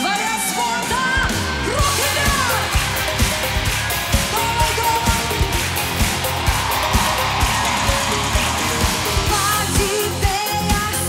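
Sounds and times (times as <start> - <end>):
live pop concert music: 0.0 - 11.0.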